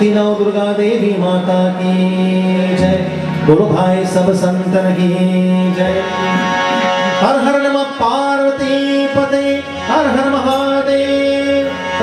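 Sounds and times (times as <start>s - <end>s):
harmonium: 0.0s - 12.0s
man singing devotional chant: 0.0s - 12.0s.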